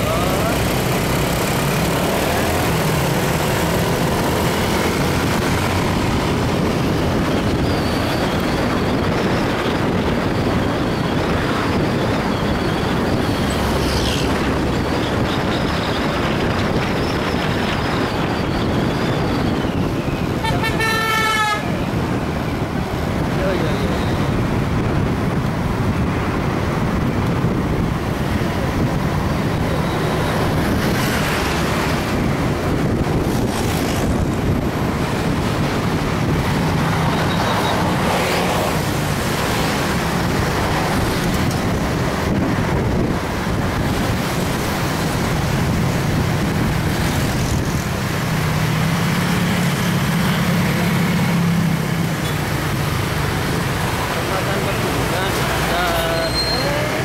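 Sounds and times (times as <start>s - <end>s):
road traffic: 0.0s - 57.0s
wind rush on microphone: 0.0s - 57.0s.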